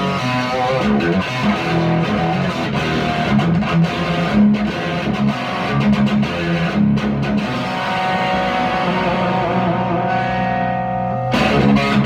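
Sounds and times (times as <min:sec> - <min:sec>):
electric guitar sustained notes: 0:00.0 - 0:12.0.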